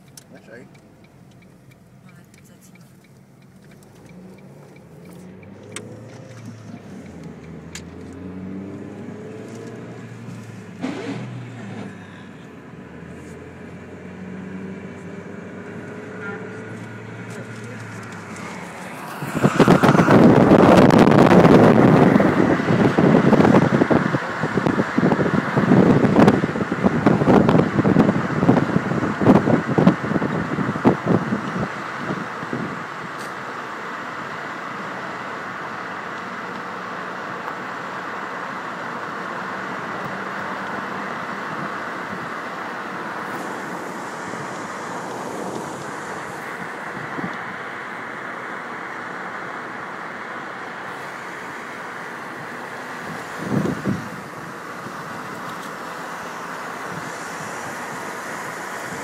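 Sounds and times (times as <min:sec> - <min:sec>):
car road noise: 0:00.0 - 0:59.0
wind buffeting microphone: 0:18.1 - 0:32.9, 0:52.4 - 0:55.5.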